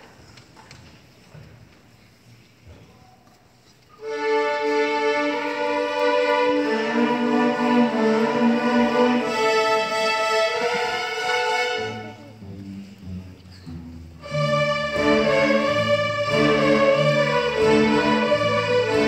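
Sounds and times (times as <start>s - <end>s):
string orchestra playing bowed chords: 4.0s - 19.0s.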